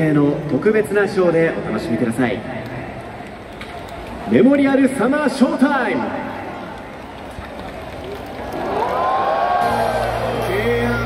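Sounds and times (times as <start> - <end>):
crowd murmuring: 9.6 - 11.0
steady bass: 9.6 - 11.0.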